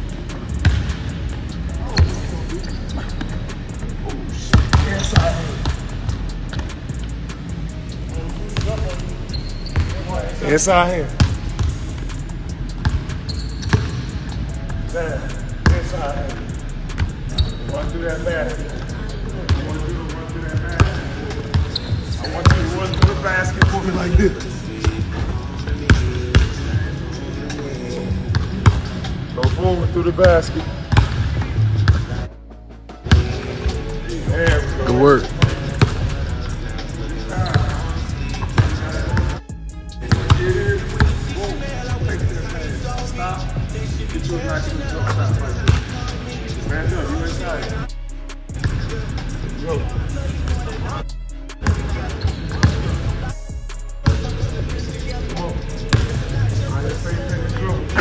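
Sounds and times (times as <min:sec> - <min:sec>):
background music: 0:00.0 - 0:58.0
indistinct voices: 0:33.0 - 0:58.0.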